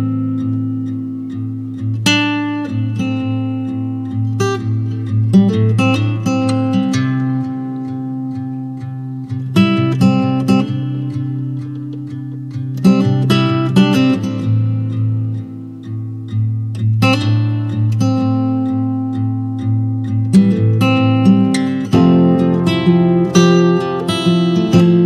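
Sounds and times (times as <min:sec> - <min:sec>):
acoustic guitar music: 0:00.0 - 0:25.0.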